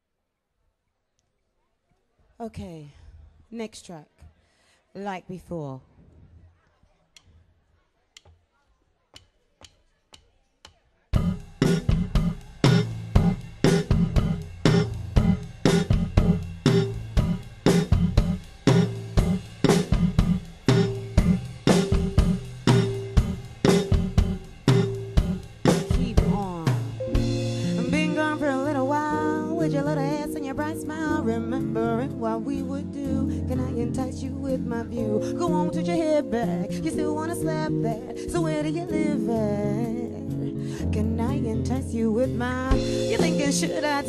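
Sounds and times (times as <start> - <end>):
live band playing: 11.2 - 29.4, 42.7 - 44.0.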